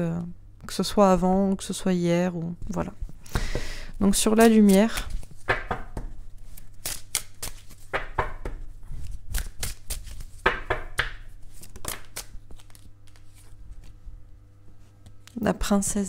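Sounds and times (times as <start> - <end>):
cards snapping while shuffled: 4.4 - 14.0.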